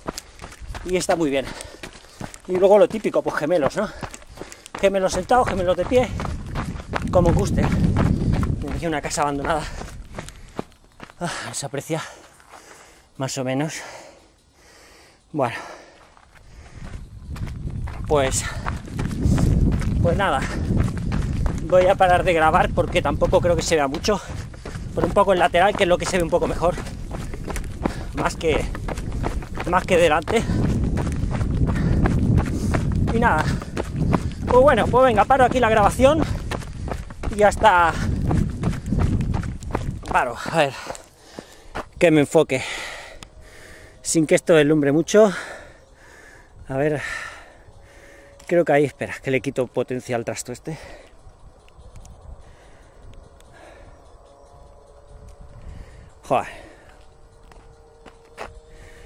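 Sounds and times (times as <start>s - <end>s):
steady low rumble: 0.0s - 11.1s, 15.8s - 59.0s
running footsteps: 0.0s - 59.0s.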